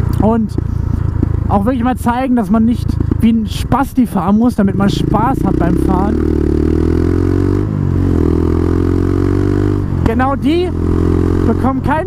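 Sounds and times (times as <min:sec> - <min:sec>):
atv engine running: 0:00.0 - 0:12.0.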